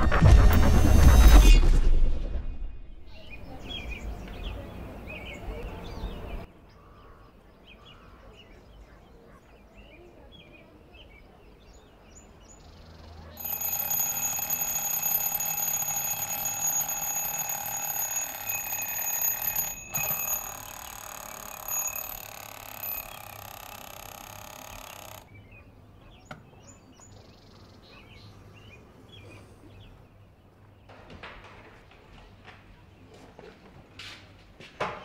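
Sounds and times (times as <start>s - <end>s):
alarm clock ringing: 13.4s - 25.3s.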